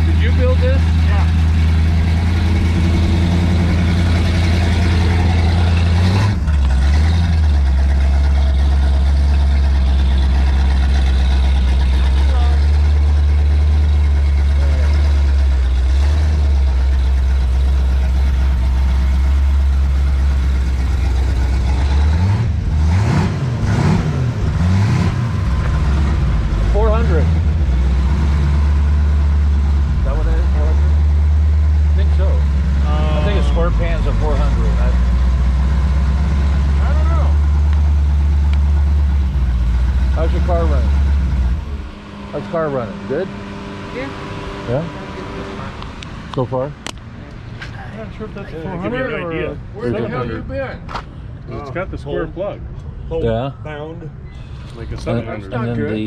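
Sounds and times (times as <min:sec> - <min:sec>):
car engine idling and revving: 0:00.0 - 0:56.0.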